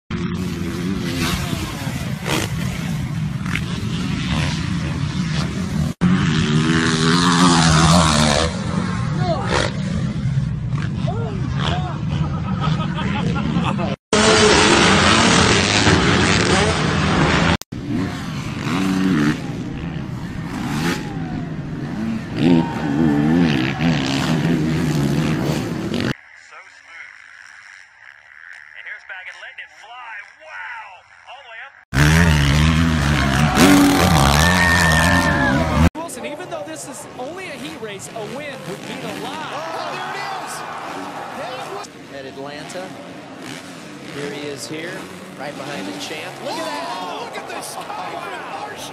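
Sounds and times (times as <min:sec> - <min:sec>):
dirt bike engines revving: 0:00.1 - 0:48.9
people's voices: 0:33.0 - 0:43.2, 0:44.0 - 0:48.9.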